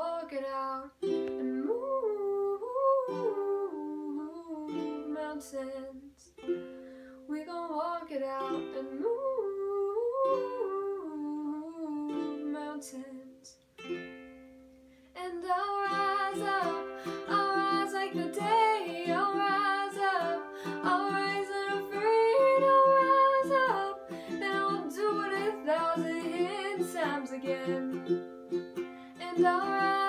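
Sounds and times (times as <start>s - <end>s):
woman singing: 0.0s - 6.3s, 7.3s - 13.6s, 15.2s - 28.2s, 28.8s - 30.0s
ukulele strumming: 0.0s - 30.0s.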